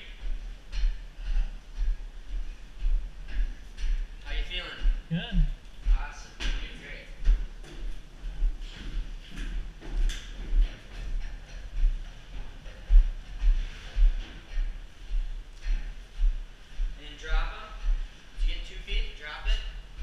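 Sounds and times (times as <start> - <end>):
footsteps on metal stairs: 0.0 - 20.0.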